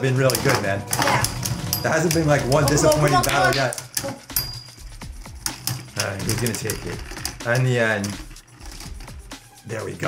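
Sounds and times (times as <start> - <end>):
spinning tops whirring: 0.2 - 10.0.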